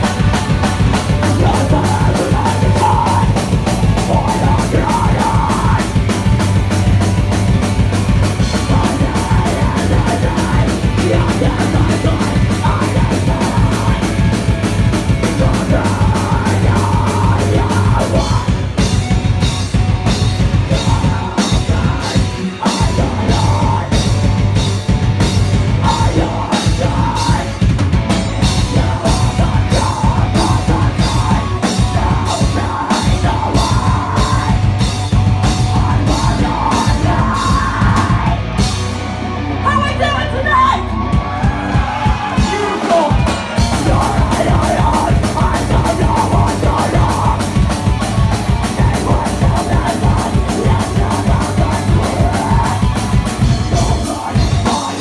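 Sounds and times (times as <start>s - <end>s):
vocals into microphone: 0.0s - 6.4s, 8.4s - 19.4s, 20.1s - 24.6s, 25.7s - 39.0s, 39.6s - 55.0s
drums: 0.0s - 55.0s
heavy metal band playing: 0.0s - 55.0s.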